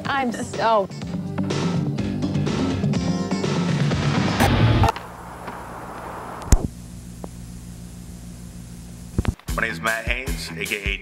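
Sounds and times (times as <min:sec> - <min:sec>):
tape hiss: 0:04.4 - 0:09.5
low electrical hum: 0:04.8 - 0:09.4.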